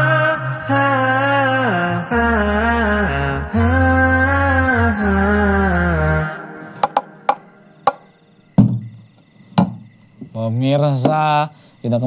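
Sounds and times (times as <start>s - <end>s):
man chanting: 0.0s - 6.8s, 10.4s - 12.0s
crickets chirping: 0.0s - 12.0s
low drone: 0.4s - 7.8s
sharp knocks: 6.8s - 10.4s
man speaking: 10.4s - 12.0s.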